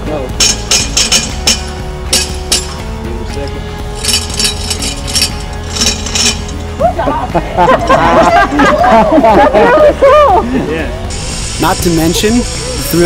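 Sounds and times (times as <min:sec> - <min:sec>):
metallic clinks on steel cable: 0:00.3 - 0:06.7.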